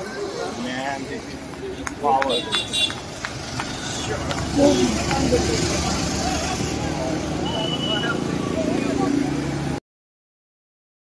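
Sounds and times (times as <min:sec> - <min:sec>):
people calling out: 0:03.6 - 0:09.2.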